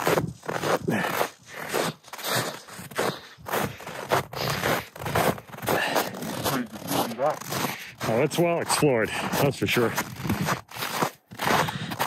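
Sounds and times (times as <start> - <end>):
footsteps crunching and scraping: 0.0 - 12.0
person speaking: 5.7 - 10.1.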